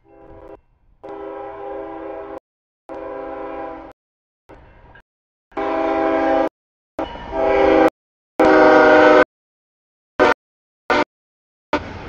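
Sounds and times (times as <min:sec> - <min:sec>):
locomotive air horn blasts: 0:00.0 - 0:04.0, 0:05.5 - 0:09.3, 0:10.2 - 0:11.1.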